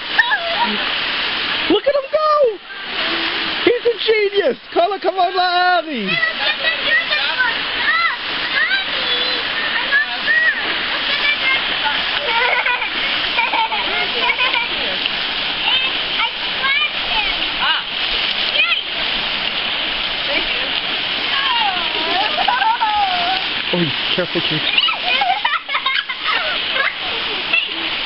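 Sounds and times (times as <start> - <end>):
splashing from people wading: 0.0 - 28.0
stream rushing over rocks: 0.0 - 28.0.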